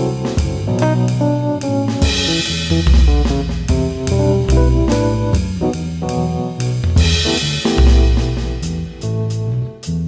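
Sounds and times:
electric guitar playing: 0:00.0 - 0:09.8
drum kit keeping time: 0:00.0 - 0:10.0
low bass notes: 0:00.0 - 0:10.0.

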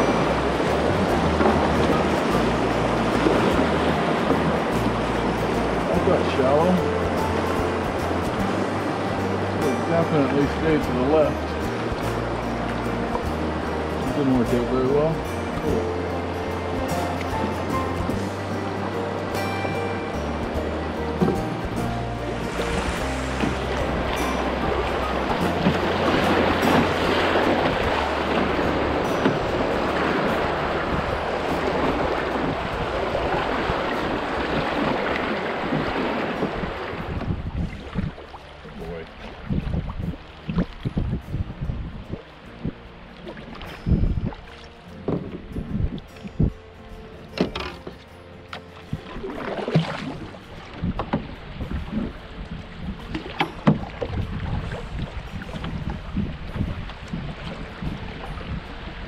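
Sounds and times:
background music with bass line: 0:00.0 - 0:59.0
river rapid water rushing: 0:00.0 - 0:59.0
wind thumps on microphone: 0:21.2 - 0:38.2, 0:39.3 - 0:42.8, 0:45.0 - 0:46.6, 0:48.9 - 0:59.0.

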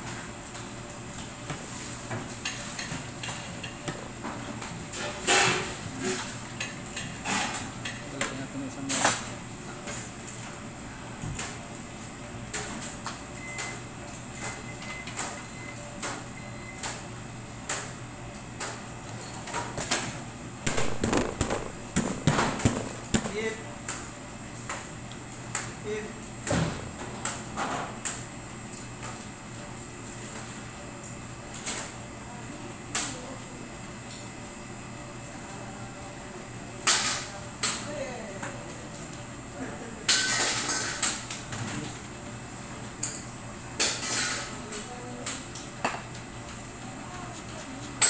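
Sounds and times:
steady electrical hum: 0:00.0 - 0:48.0.

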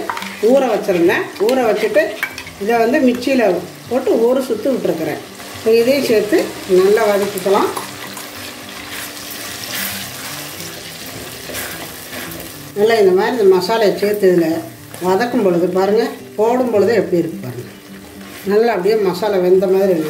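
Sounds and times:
vegetables sizzling in oil: 0:00.0 - 0:20.0
woman talking: 0:00.4 - 0:07.8, 0:12.8 - 0:17.4, 0:18.4 - 0:20.0
wooden spoon stirring: 0:07.8 - 0:12.5.

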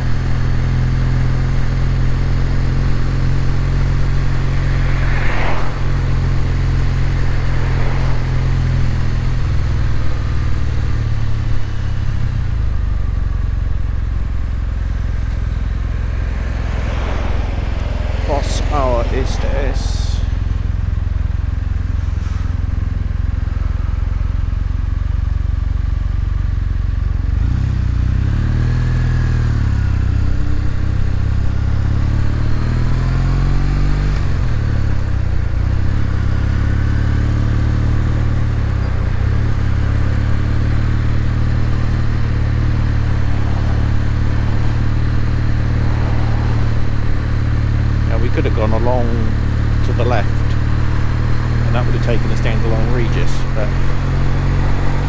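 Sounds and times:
motorcycle engine running: 0:00.0 - 0:55.0.

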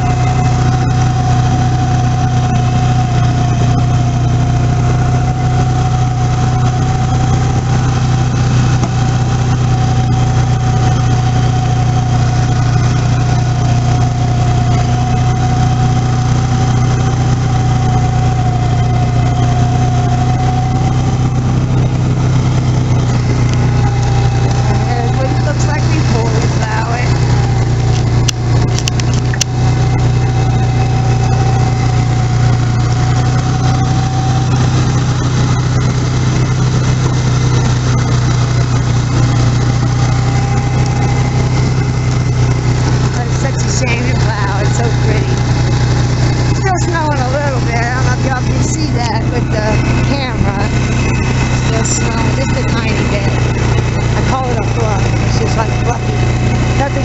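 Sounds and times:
atv engine running: 0:00.0 - 0:57.0
steady whine: 0:00.0 - 0:57.0.

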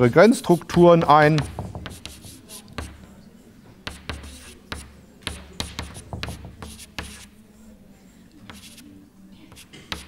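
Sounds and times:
chalk tapping and scratching: 0:00.0 - 0:03.2, 0:03.8 - 0:07.4, 0:08.4 - 0:10.0.

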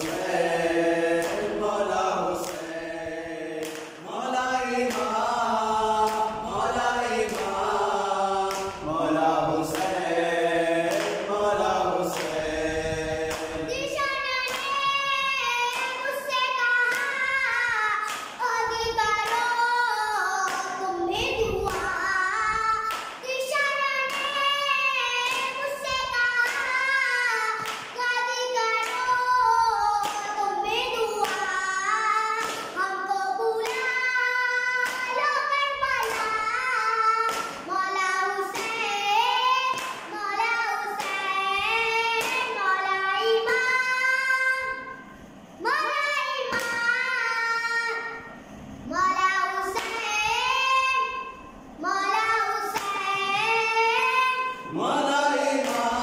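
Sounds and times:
boy singing a lament: 0:00.0 - 0:45.0.

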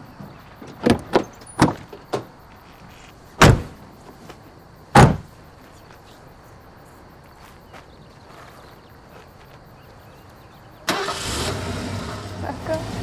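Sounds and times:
truck doors slamming: 0:00.6 - 0:02.4, 0:03.4 - 0:03.8, 0:04.9 - 0:05.4.

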